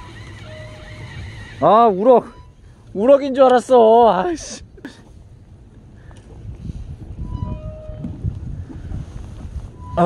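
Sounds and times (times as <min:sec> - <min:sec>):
short beeping tones: 0:02.1 - 0:02.6, 0:09.8 - 0:10.0
wind buffeting microphone: 0:03.8 - 0:10.0.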